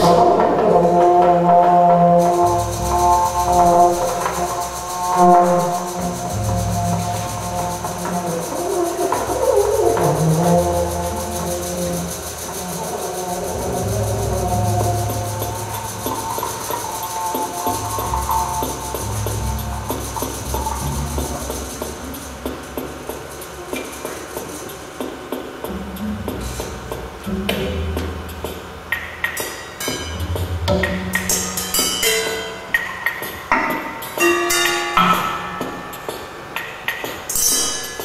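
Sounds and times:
low droning notes: 0:00.0 - 0:24.5
held higher tones: 0:00.0 - 0:25.0.

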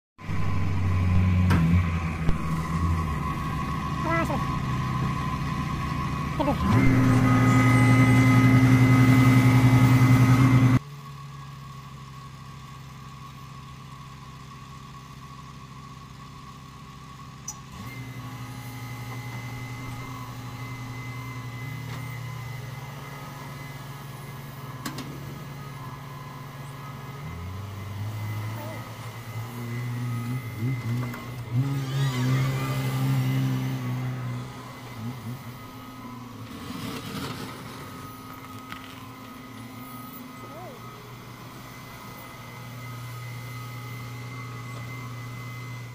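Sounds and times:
excavator engine running: 0:00.2 - 0:45.9
loud diesel engine close by: 0:00.2 - 0:45.9
bucket scooping snow: 0:36.0 - 0:39.4.

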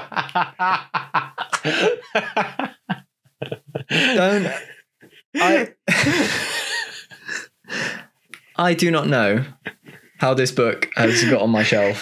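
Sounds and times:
man laughing: 0:00.0 - 0:04.8, 0:05.4 - 0:07.4, 0:10.8 - 0:11.9.

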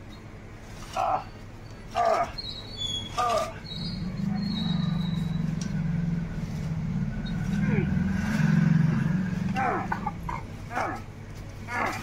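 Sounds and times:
vehicle engine droning: 0:00.9 - 0:12.0.

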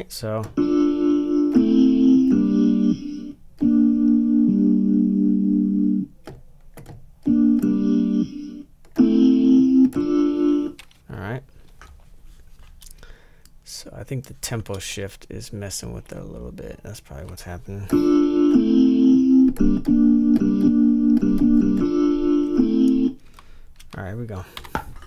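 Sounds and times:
electric piano chords: 0:00.5 - 0:06.1, 0:07.2 - 0:10.8, 0:17.9 - 0:23.2.

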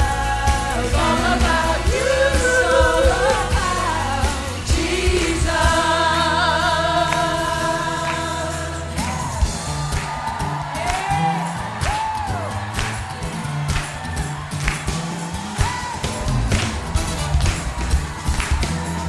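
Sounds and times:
group singing praise song: 0:00.0 - 0:10.2
instrumental accompaniment: 0:00.0 - 0:19.0.

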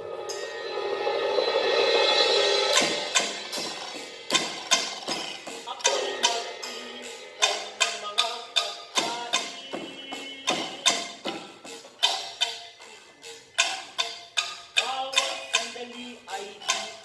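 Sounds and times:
held tone: 0:00.0 - 0:17.0
ringing percussion strokes: 0:00.0 - 0:17.0.

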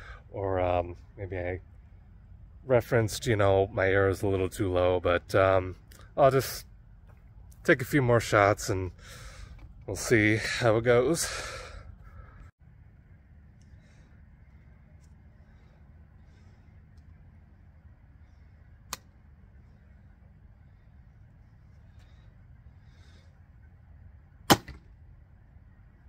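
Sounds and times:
bow string snap: 0:18.8 - 0:19.2.

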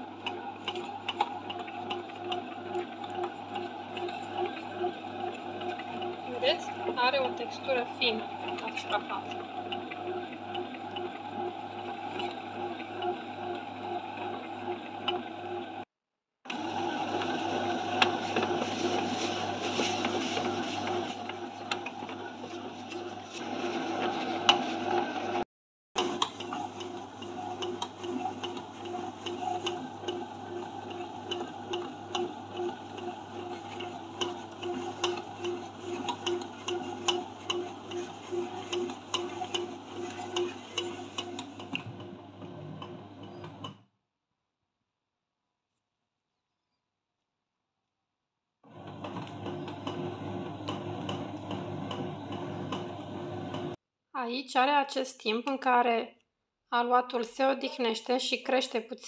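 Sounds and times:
bread maker motor humming: 0:00.0 - 0:15.8, 0:16.5 - 0:25.4, 0:26.0 - 0:43.8, 0:48.6 - 0:53.8.

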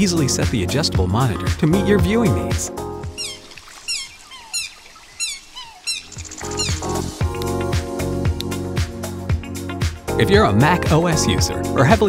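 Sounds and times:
background music: 0:00.0 - 0:03.6, 0:05.9 - 0:12.0
songbird chirping: 0:02.0 - 0:07.6
fainter lower bird calls: 0:03.2 - 0:07.2.

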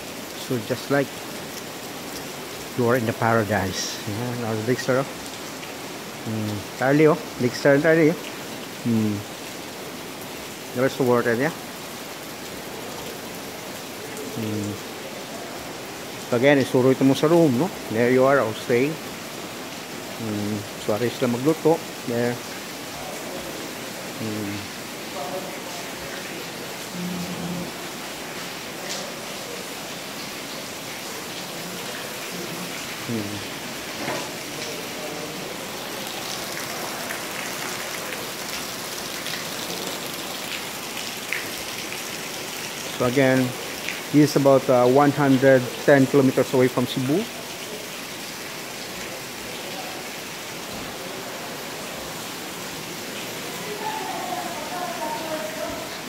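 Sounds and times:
steady rain hiss: 0:00.0 - 0:56.0
faint raindrop ticks: 0:01.5 - 0:02.4, 0:28.3 - 0:29.2.

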